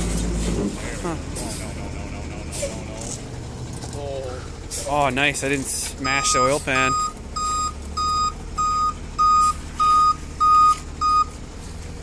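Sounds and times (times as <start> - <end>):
truck engine running under load: 0.0 - 12.0.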